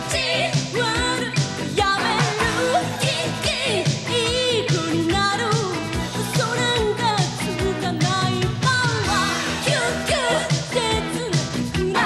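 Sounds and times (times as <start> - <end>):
drums steady beat: 0.0 - 12.0
woman singing pop song: 0.0 - 12.0.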